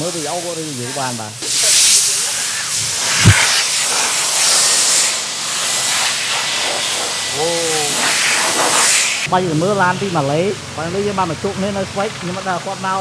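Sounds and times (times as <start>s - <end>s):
electric blower air rush: 0.0s - 11.2s.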